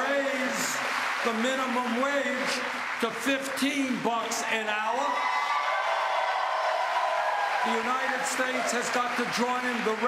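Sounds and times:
crowd clapping: 0:00.0 - 0:10.0.

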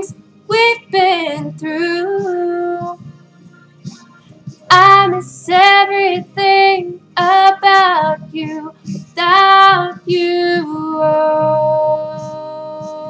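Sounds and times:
girl singing: 0:00.0 - 0:03.0, 0:04.7 - 0:13.0.

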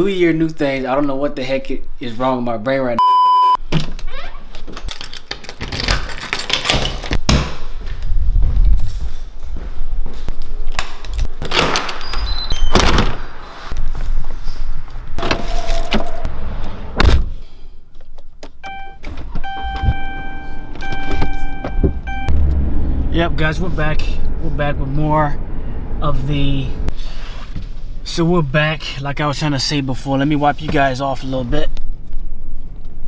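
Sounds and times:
car warning chime beeps: 0:03.0 - 0:03.6, 0:18.6 - 0:22.4
keys jingling: 0:04.8 - 0:07.2
car door opening and shutting: 0:18.4 - 0:22.6.

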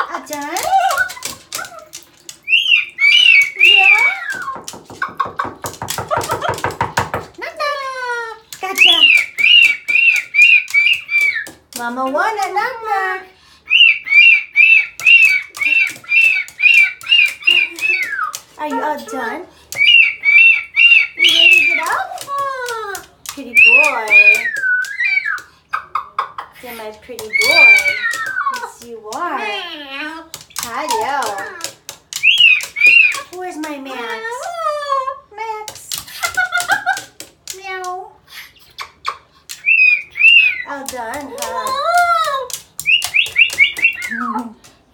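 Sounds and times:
cockatoo squawking: 0:00.0 - 0:06.0, 0:08.7 - 0:11.6, 0:13.7 - 0:22.6, 0:23.5 - 0:33.4, 0:38.4 - 0:44.5.

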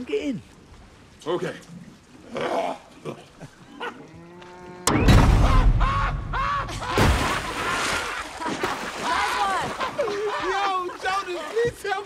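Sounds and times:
deep rumbling crash: 0:04.9 - 0:07.7
big splash into water: 0:04.9 - 0:10.0.

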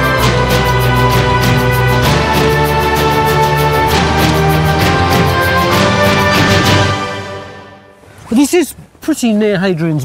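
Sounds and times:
theme music with quick beat: 0:00.0 - 0:07.8.

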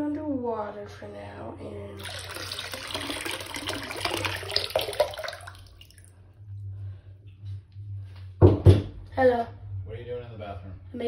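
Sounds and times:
low hum: 0:00.0 - 0:11.0
water splashing into sink: 0:02.0 - 0:06.1.

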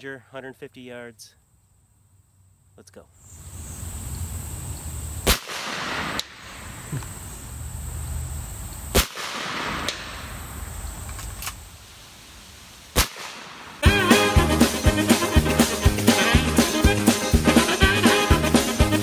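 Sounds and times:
air rifle shots: 0:05.2 - 0:06.8, 0:08.9 - 0:10.4, 0:12.9 - 0:13.8.

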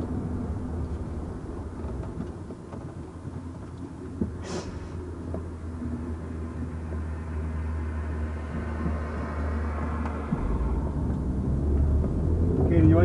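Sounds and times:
low vehicle rumble: 0:00.0 - 0:13.0
hiss in car cabin: 0:04.4 - 0:05.0.

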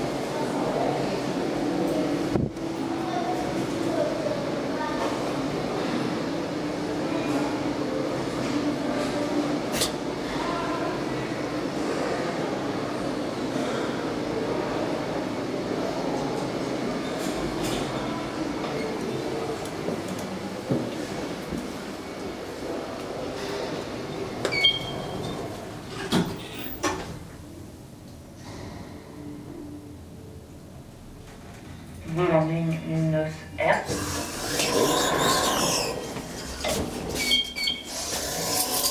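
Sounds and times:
elevator doors sliding shut: 0:24.1 - 0:27.2
elevator doors scraping open: 0:24.2 - 0:27.0, 0:33.9 - 0:38.9.

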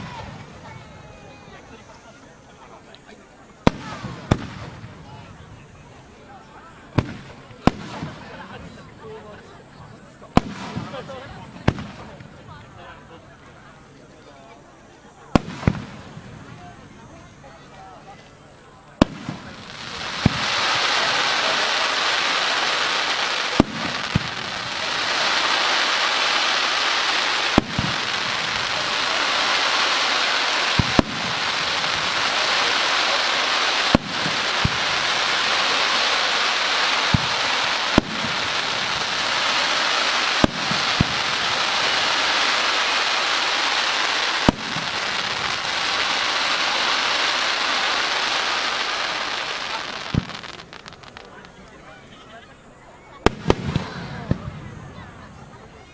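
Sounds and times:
fireworks shells bursting: 0:19.0 - 0:51.7
crackle of burning sparks: 0:19.0 - 0:51.8.

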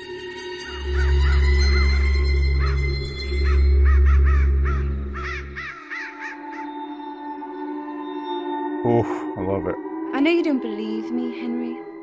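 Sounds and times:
deep drone: 0:08.9 - 0:09.9.

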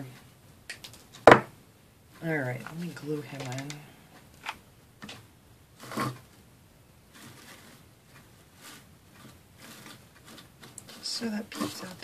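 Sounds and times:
faint rustles: 0:07.0 - 0:12.0.

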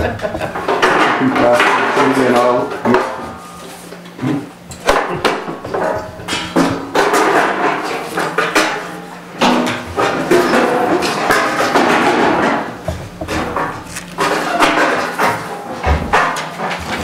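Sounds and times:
chairs knocking and clattering: 0:00.0 - 0:02.0, 0:04.7 - 0:07.7, 0:11.4 - 0:17.0.

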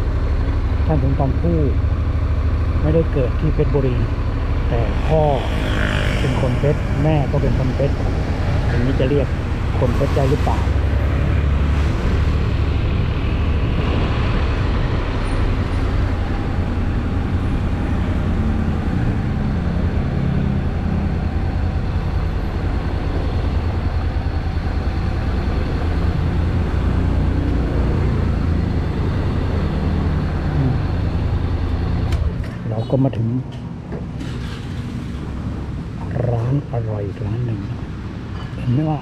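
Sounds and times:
motorcycle engine: 0:00.0 - 0:32.6.

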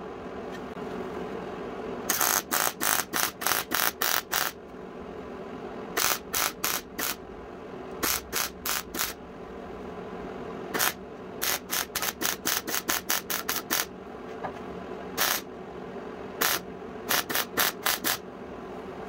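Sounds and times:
welder arc in short bursts: 0:02.1 - 0:04.6, 0:06.0 - 0:07.2, 0:08.0 - 0:09.2, 0:10.7 - 0:13.9, 0:15.2 - 0:15.5, 0:16.4 - 0:18.2.

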